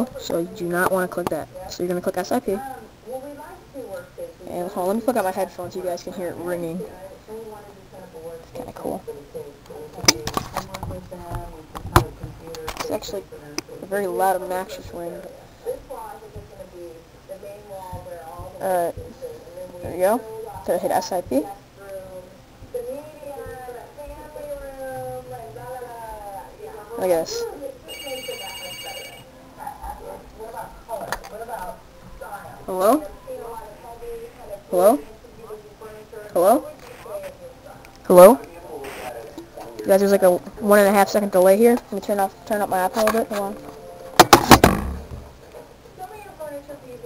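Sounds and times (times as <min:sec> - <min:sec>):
electronic call ringing: 0:27.9 - 0:29.3.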